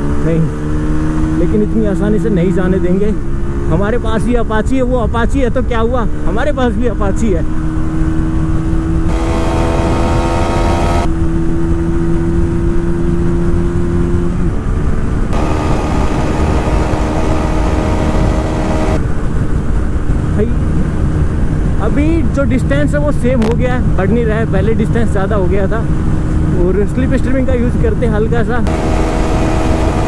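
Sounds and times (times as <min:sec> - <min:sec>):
motorcycle engine at high revs: 0:00.0 - 0:04.3, 0:06.1 - 0:21.4, 0:27.8 - 0:30.0
wind rush on microphone: 0:00.0 - 0:30.0.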